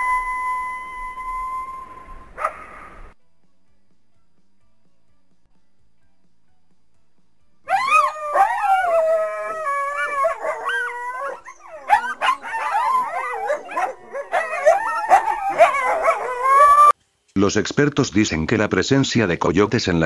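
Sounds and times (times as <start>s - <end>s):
coyotes howling and yipping: 0.0s - 3.1s, 7.7s - 17.0s.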